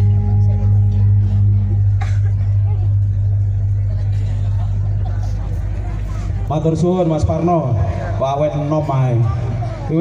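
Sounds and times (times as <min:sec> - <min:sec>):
faint crowd chatter: 0:00.0 - 0:10.0
steady low hum: 0:00.0 - 0:10.0.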